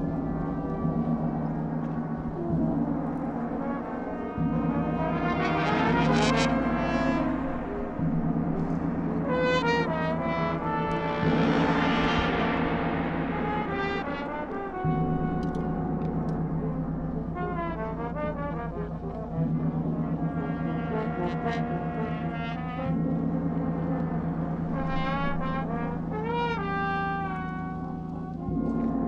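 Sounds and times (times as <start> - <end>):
brass ensemble fanfare: 0.0 - 29.0.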